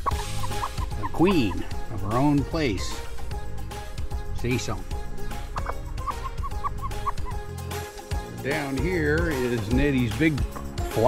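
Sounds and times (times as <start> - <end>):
hen clucking: 0.0 - 7.8, 10.4 - 11.0
background music: 0.0 - 11.0.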